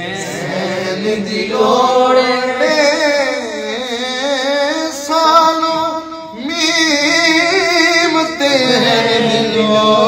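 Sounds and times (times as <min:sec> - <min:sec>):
man singing devotional song: 0:00.0 - 0:10.0.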